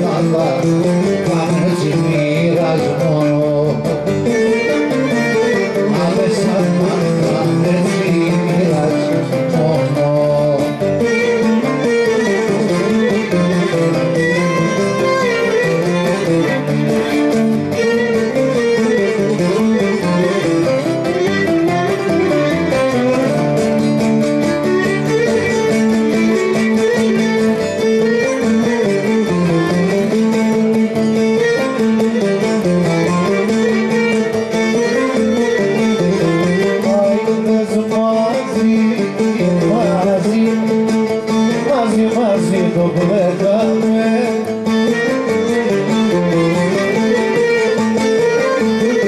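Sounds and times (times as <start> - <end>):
bowed string melody: 0.0 - 49.0
plucked lutes: 0.0 - 49.0.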